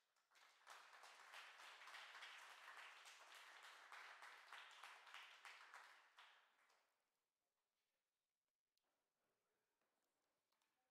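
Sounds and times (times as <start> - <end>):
audience applauding: 0.4 - 6.2.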